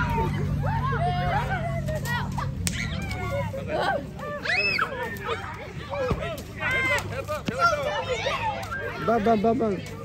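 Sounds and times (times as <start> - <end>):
children shouting and squealing: 0.0 - 10.0.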